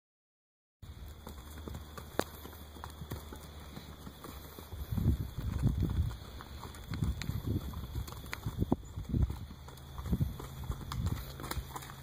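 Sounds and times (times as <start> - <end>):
horse hooves on dirt: 0.8 - 12.0.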